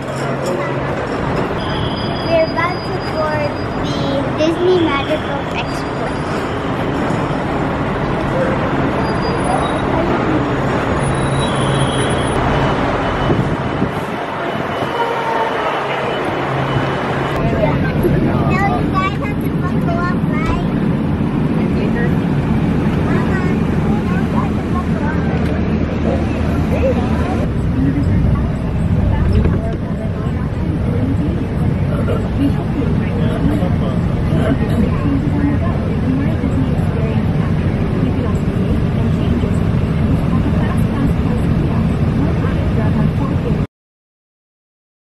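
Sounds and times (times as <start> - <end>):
people talking indistinctly: 0.0 - 11.1, 17.3 - 43.7
bus engine running: 0.0 - 43.6
road rumble: 0.0 - 43.7.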